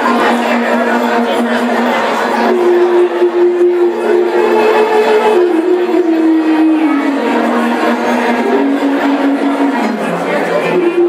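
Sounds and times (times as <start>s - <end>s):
clarinet folk melody: 0.0s - 11.0s
room chatter: 0.0s - 11.0s
small folk band: 0.0s - 11.0s.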